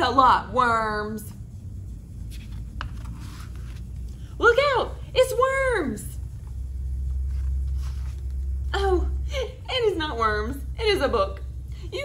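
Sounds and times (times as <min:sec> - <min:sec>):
low background rumble: 0:00.0 - 0:12.0
page being turned: 0:02.2 - 0:04.2, 0:06.4 - 0:08.6.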